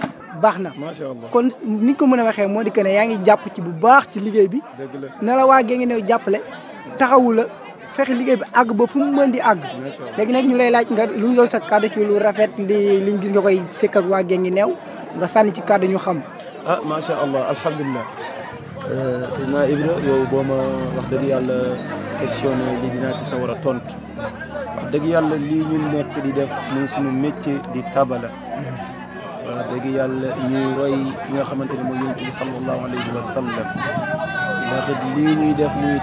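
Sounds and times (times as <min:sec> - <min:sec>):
background voices chattering: 0:00.0 - 0:36.0
man talking: 0:18.8 - 0:33.8, 0:34.6 - 0:36.0.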